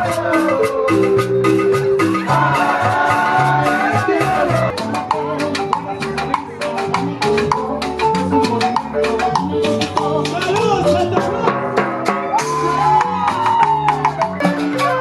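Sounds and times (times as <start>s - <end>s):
electric bass: 0.0s - 15.0s
marimba: 0.0s - 15.0s.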